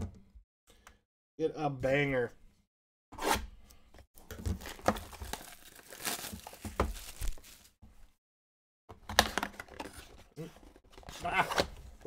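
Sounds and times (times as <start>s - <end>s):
paper and wrapper crinkling: 4.3s - 7.8s
cardboard tearing: 4.5s - 7.7s.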